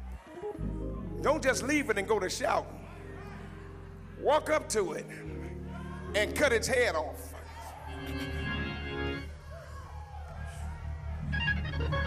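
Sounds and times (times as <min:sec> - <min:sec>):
church organ playing chords: 0:00.4 - 0:07.3, 0:07.9 - 0:09.3.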